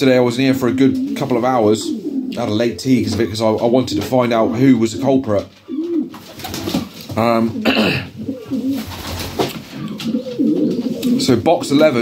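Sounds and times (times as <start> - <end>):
pigeons cooing: 0.1 - 12.0.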